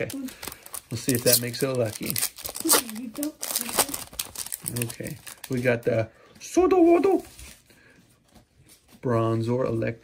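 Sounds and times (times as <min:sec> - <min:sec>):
foil pack crinkling: 0:00.0 - 0:05.8.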